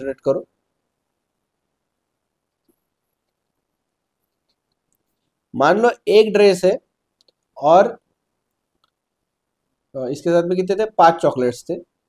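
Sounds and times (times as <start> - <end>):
faint clicks: 8.4 - 9.0.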